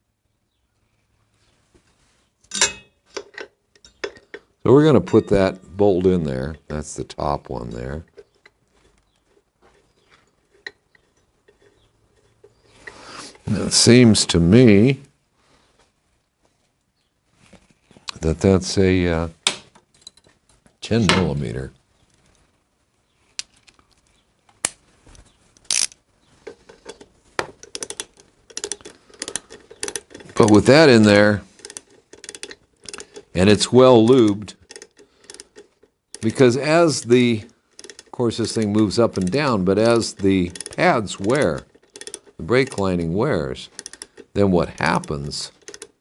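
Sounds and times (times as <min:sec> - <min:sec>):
metallic clicks and ticks: 0:25.5 - 0:46.0.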